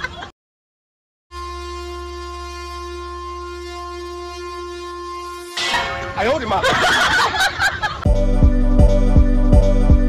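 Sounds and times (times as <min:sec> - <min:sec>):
train horn blowing: 0:01.3 - 0:06.6.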